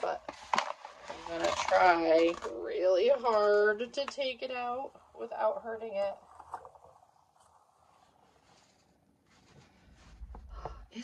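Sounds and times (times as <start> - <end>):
faint soft sounds: 2.2 - 11.0
fingers rustling in powder: 7.3 - 10.6.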